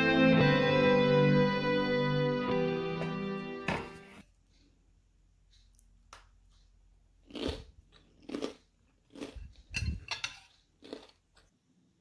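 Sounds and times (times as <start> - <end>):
knife crunching through toast: 7.3 - 11.5.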